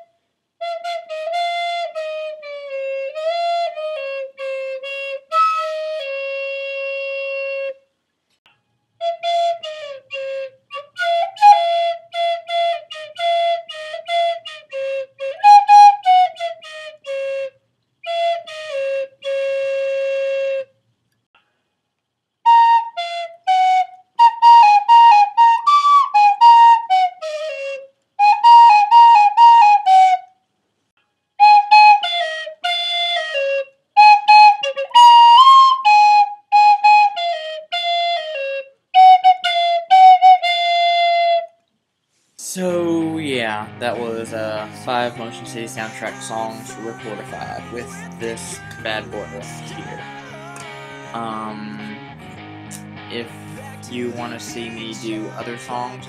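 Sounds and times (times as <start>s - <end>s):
recorder playing melody: 22.4s - 30.3s, 31.4s - 41.5s, 42.6s - 56.0s.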